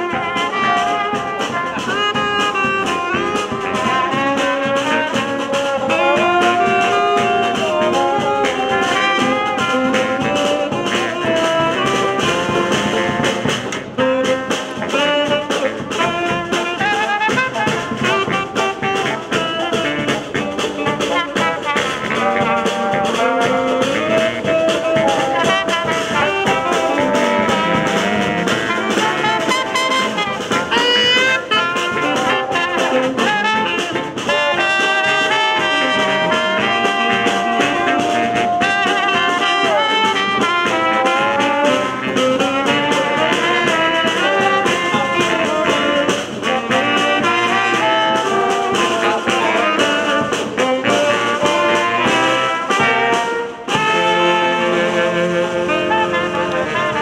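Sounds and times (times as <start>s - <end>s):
bass drum: 0.0s - 57.0s
saxophones: 0.0s - 57.0s
snare drum: 0.0s - 57.0s
trombone: 0.0s - 57.0s
trumpet: 0.0s - 57.0s.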